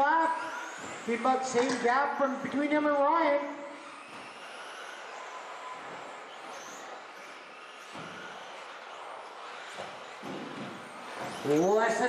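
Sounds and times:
electric motor whine: 0.0s - 12.0s.

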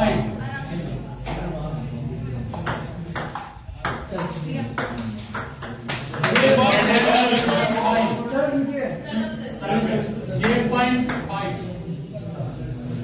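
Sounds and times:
voices of players and onlookers: 0.0s - 13.0s.

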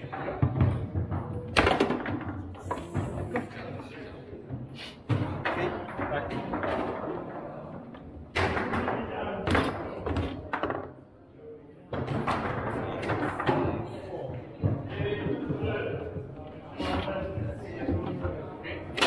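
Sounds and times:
foosball ball and rods knocking: 0.0s - 3.6s, 5.1s - 10.9s
voices in room: 0.0s - 19.0s.

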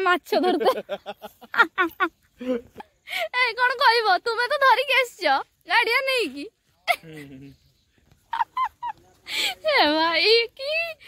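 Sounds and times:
woman laughing: 0.3s - 2.9s, 6.8s - 7.5s, 8.2s - 10.0s.

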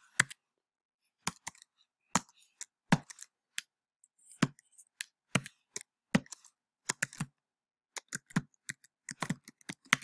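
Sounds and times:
typing on keyboard: 1.2s - 3.6s, 4.5s - 10.0s.

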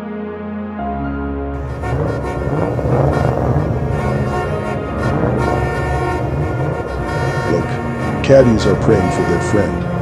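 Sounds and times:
low rumble: 1.6s - 8.1s
car horns sounding a chord: 1.6s - 10.0s.

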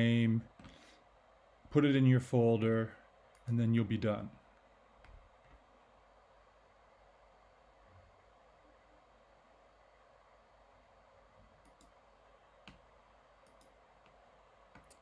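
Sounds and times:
faint room hiss: 0.0s - 15.0s
computer mouse clicks: 11.5s - 12.0s, 12.6s - 15.0s.

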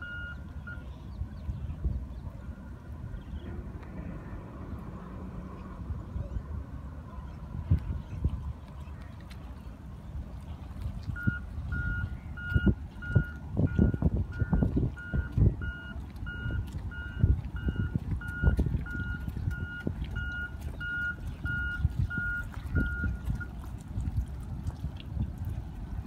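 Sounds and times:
low thumps and rumble: 2.9s - 8.8s, 10.7s - 26.0s.

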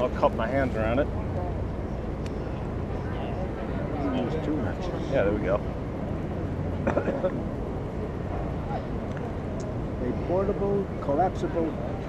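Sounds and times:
low city rumble: 0.0s - 12.0s.

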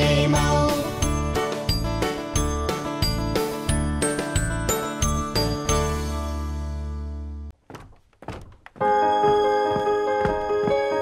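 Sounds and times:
soft thuds: 7.6s - 10.9s.

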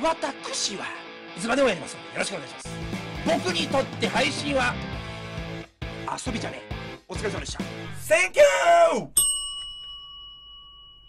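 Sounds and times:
bell ding ringing: 9.2s - 11.0s.

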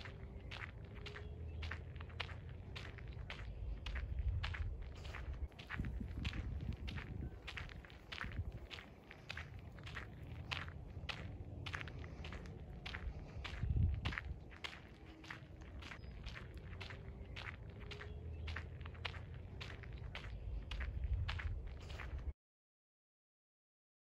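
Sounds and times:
footsteps crunching on gravel: 0.0s - 22.3s
low rumble: 0.0s - 22.3s.

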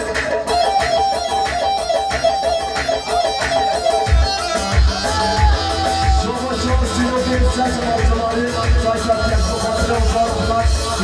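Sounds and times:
fast plucked string melody: 0.0s - 11.0s.

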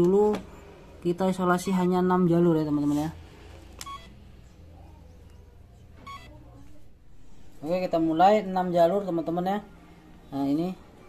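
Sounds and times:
faint low hum: 0.0s - 11.0s
short electronic beeps: 3.8s - 4.2s, 6.0s - 6.4s.

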